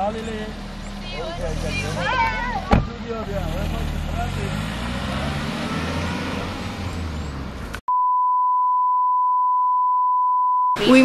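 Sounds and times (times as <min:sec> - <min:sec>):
car engine rumble: 0:00.0 - 0:07.8
outdoor noise: 0:00.0 - 0:07.9
censor bleep: 0:07.9 - 0:11.0.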